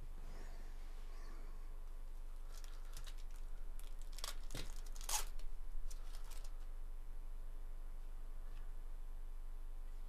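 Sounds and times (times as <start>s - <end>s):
foil wrapper tearing and crinkling: 2.5s - 6.5s.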